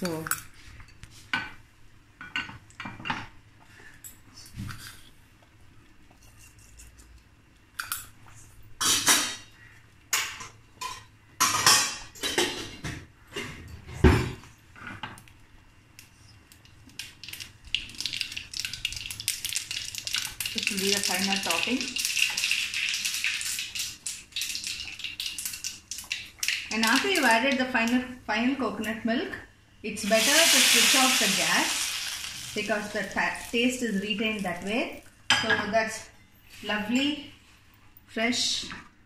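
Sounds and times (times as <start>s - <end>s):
seeds crackling sizzle in oil: 16.0s - 28.0s, 30.0s - 35.0s.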